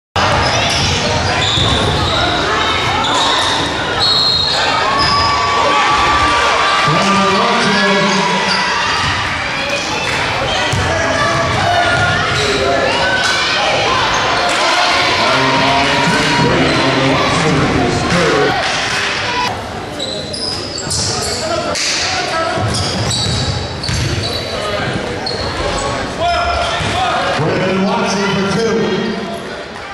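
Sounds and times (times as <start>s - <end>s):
echoing crowd voices: 0.2s - 29.9s
shoe squeaks: 0.4s - 2.4s, 3.0s - 5.4s, 20.0s - 21.6s, 22.7s - 24.6s, 25.2s - 26.0s
basketball bouncing: 22.6s - 24.2s.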